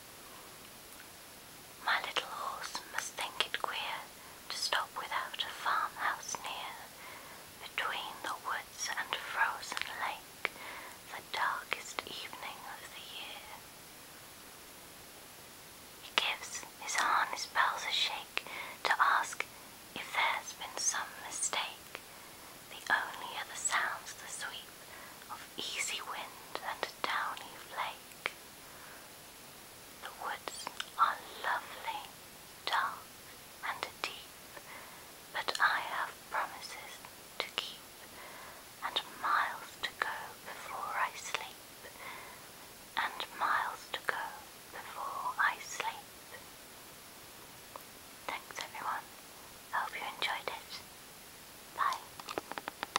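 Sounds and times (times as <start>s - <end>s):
person whispering: 1.8s - 7.0s, 7.6s - 13.6s, 16.0s - 21.9s, 22.7s - 24.7s, 25.3s - 28.3s, 30.0s - 33.0s, 33.6s - 34.7s, 35.4s - 37.8s, 38.8s - 42.2s, 43.0s - 46.1s, 48.3s - 49.1s, 49.7s - 50.8s, 51.8s - 52.3s.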